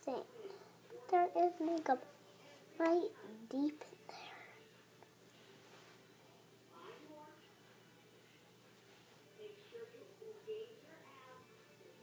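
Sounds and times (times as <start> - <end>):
faint whispered voice: 0.0 - 12.0.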